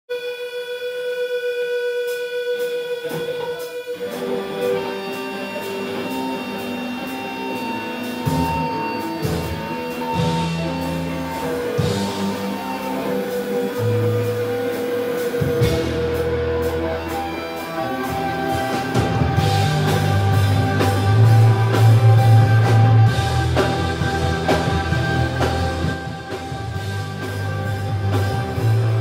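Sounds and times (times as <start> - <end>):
amplified instrument steady high tone: 0.1 - 29.0
electric guitar held notes: 0.1 - 29.0.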